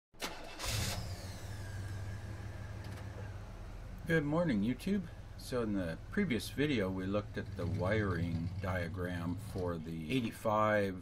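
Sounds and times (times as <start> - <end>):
car engine starting and idling: 0.2 - 10.7.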